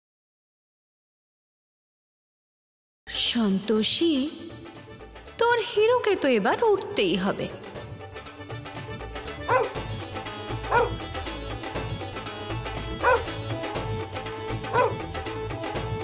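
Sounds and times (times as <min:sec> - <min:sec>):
background music: 0:03.1 - 0:16.0
dog barking: 0:09.5 - 0:09.8, 0:10.6 - 0:11.0, 0:13.0 - 0:13.4, 0:14.7 - 0:15.0.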